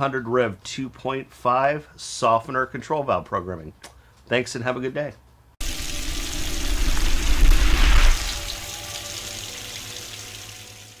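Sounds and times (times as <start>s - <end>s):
rushing water: 5.6s - 11.0s.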